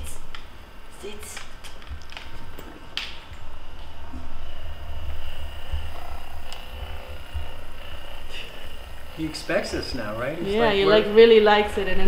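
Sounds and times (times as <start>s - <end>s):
massage gun pulsing hum: 0.0s - 12.0s.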